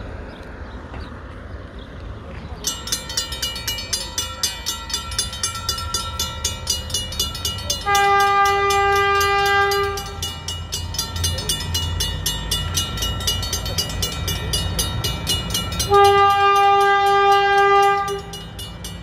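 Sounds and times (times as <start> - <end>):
level crossing bells ringing: 2.6 - 19.0
diesel locomotive horn blasts: 7.8 - 10.6, 15.8 - 18.6.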